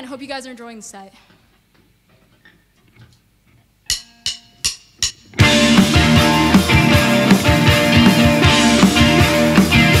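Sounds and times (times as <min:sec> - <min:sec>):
drumstick count-in strikes: 0:03.9 - 0:10.0.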